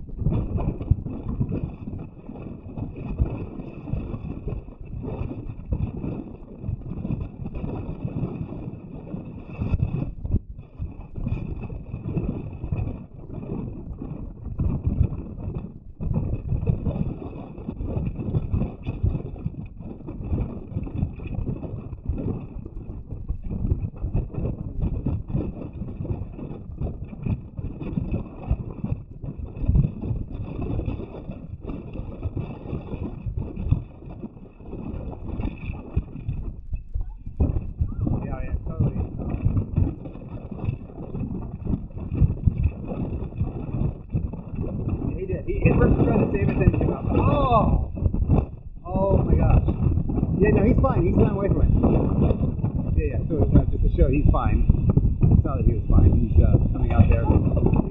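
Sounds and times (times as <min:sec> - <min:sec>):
surf crashing over rocks: 0:44.2 - 0:55.6, 0:56.3 - 0:57.9.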